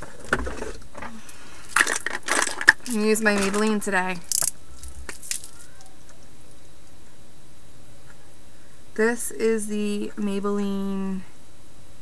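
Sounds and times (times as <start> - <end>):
woman's voice: 2.9 - 4.3, 9.0 - 11.3.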